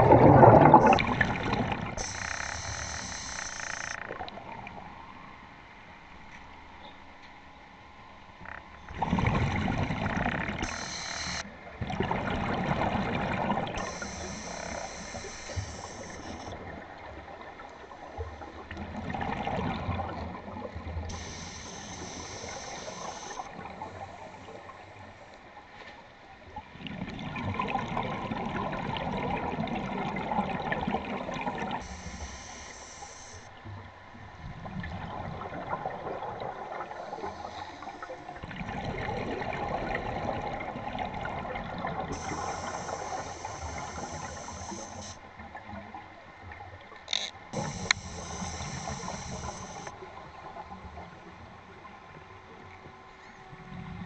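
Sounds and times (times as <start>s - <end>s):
bubbling exhaust: 0.0s - 4.1s
regulator inhale hiss: 2.0s - 4.0s, 10.6s - 11.5s, 13.8s - 16.6s, 21.1s - 24.6s, 31.8s - 33.5s, 37.2s - 38.1s, 42.1s - 45.3s, 47.5s - 50.0s.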